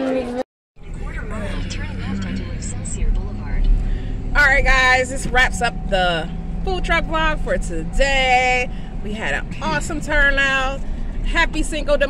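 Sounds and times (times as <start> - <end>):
faint talking: 0.0 - 3.8
car cabin road rumble: 0.8 - 12.0.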